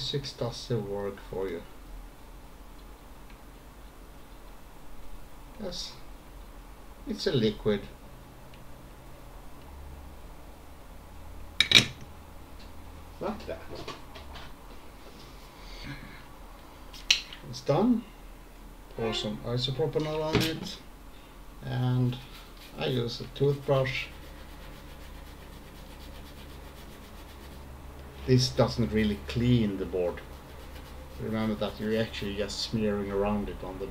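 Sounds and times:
low steady hum: 0.0s - 33.9s
toothbrush scrubbing circuit board: 22.7s - 27.7s, 30.1s - 32.2s.

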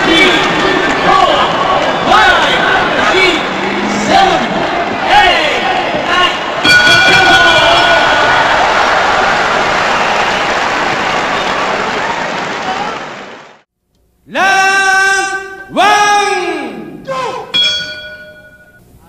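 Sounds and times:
crowd shouting excitedly: 0.0s - 13.1s
steady horn-like tone: 2.1s - 5.4s.

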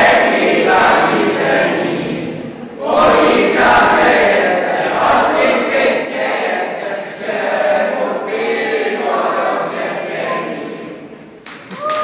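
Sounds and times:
children singing in choir: 0.0s - 11.2s.

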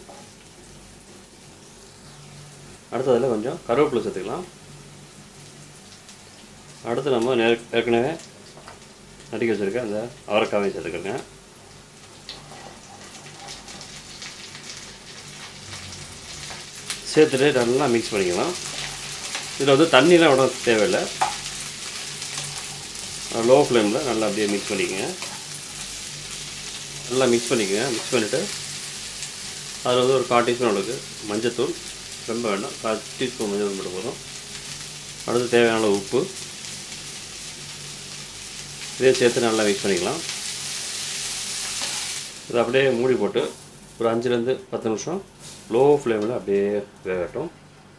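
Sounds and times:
beans sizzling in a pan: 0.0s - 47.7s
wooden spatula scraping beans: 12.3s - 14.0s, 17.6s - 25.8s.

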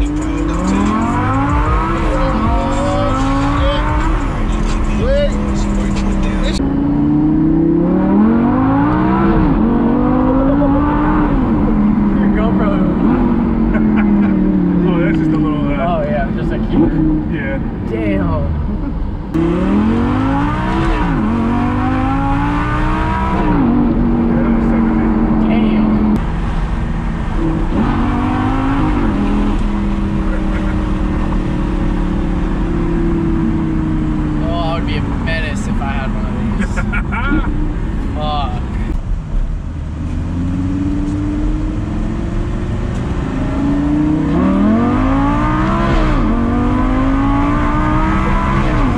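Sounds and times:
car engine revving through gears: 0.0s - 39.0s, 39.6s - 48.9s.

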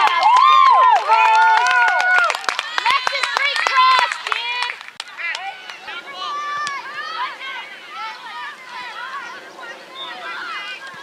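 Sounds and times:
sharp claps: 0.0s - 5.8s
people shouting and cheering: 0.0s - 11.0s.

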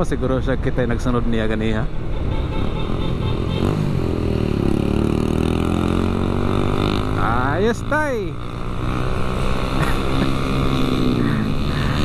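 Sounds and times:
road and wind noise: 0.0s - 12.0s
motorcycle engine accelerating: 3.4s - 12.0s.

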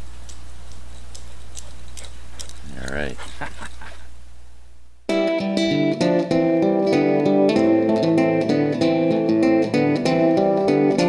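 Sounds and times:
steady low hum: 0.0s - 5.1s
dog collar tags jangling: 0.1s - 3.0s.

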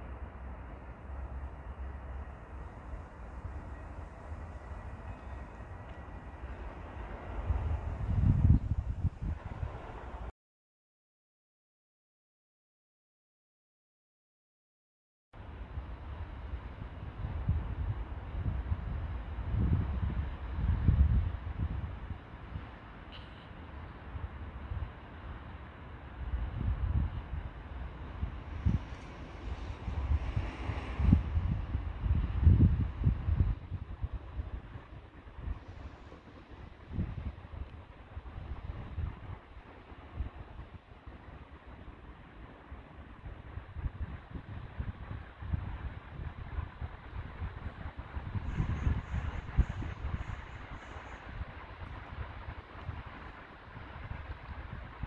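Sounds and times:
wind buffeting microphone: 2.2s - 10.3s, 15.7s - 22.7s, 26.2s - 55.0s.

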